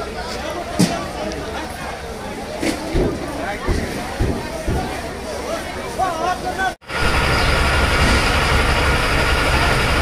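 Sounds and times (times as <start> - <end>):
voices: 0.0 - 10.0
diesel engine rumbling: 6.8 - 10.0.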